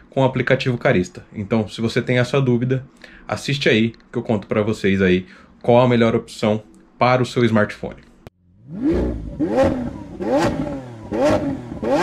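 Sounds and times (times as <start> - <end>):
car engine revving in blips: 8.4 - 12.0.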